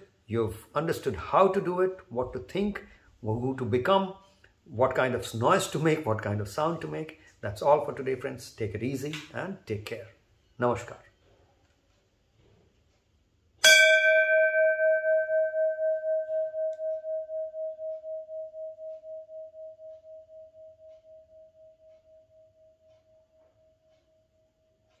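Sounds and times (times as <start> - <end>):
brass temple bell ringing: 13.6 - 17.4.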